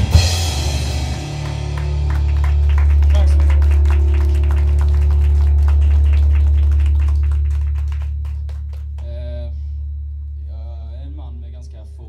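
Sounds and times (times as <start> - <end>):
rock band chord ringing: 0.0 - 11.4
drum and cymbal hits: 0.0 - 11.8.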